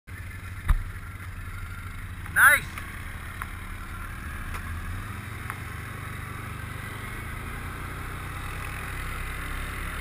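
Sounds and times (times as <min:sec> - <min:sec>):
atv engine running at low speed: 0:00.1 - 0:10.0.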